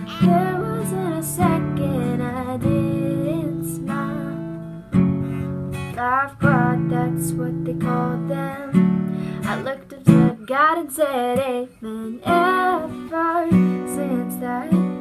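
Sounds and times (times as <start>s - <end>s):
woman singing: 0.0s - 4.6s, 5.9s - 15.0s
strummed acoustic guitar: 0.0s - 15.0s.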